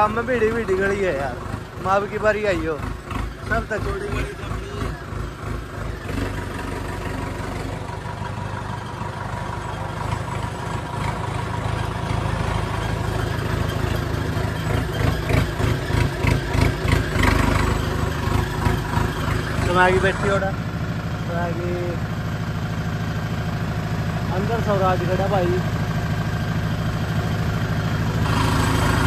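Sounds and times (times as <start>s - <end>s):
tractor diesel engine running: 0.0s - 29.0s.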